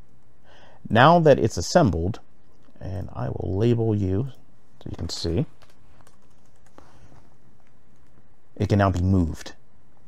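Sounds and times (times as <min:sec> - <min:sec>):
faint background hiss: 0:00.0 - 0:10.0
computer keyboard keystrokes: 0:05.5 - 0:06.9.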